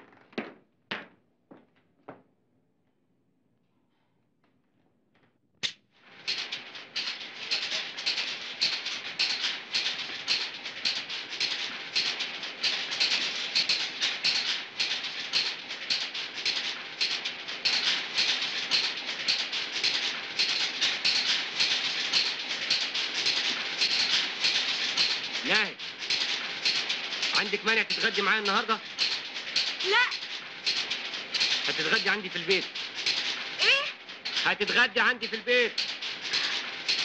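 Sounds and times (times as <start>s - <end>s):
factory machinery metallic clatter: 6.0s - 37.0s.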